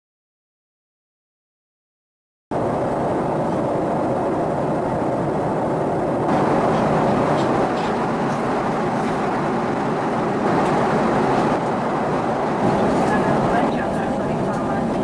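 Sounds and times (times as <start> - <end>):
airliner cabin drone: 2.5 - 15.0.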